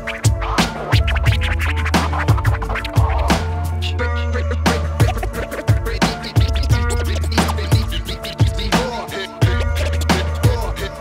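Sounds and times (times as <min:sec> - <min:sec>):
hip hop beat: 0:00.0 - 0:11.0
turntable scratching: 0:00.0 - 0:11.0.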